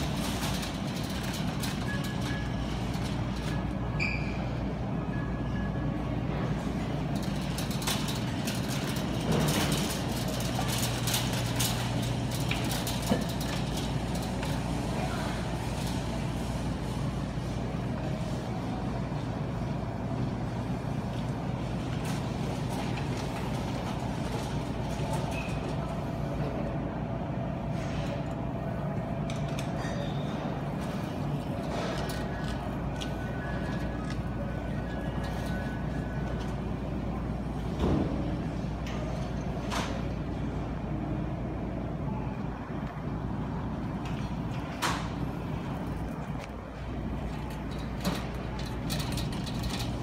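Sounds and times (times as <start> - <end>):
faint voices: 0.0 - 50.0.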